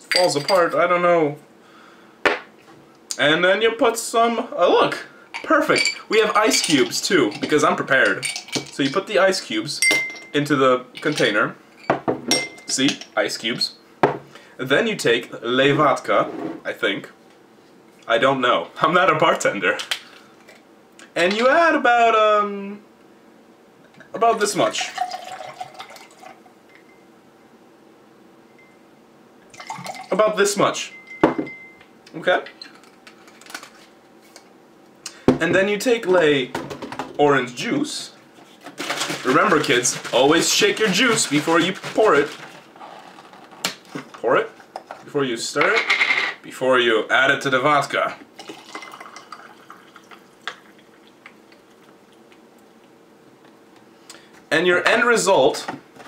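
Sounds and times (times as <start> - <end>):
ice clicks and clinks: 5.4 - 9.0, 48.4 - 50.8
liquid pouring over ice: 24.6 - 26.4, 29.5 - 30.2, 48.4 - 52.4.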